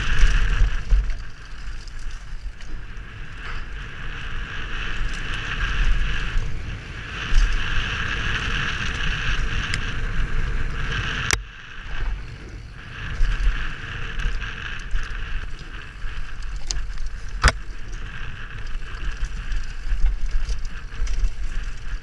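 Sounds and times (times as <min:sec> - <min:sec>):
bike rattling over dirt trail: 0:00.0 - 0:22.0
wind rushing over microphone: 0:00.0 - 0:22.0.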